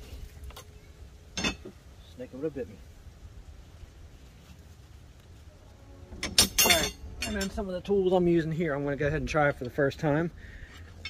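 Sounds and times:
metal tools clanking: 0:01.3 - 0:01.7, 0:06.1 - 0:07.9.

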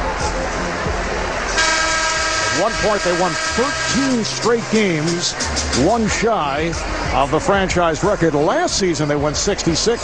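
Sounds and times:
arena crowd noise: 0:00.0 - 0:10.0
loud steady horn tone: 0:01.6 - 0:05.9.

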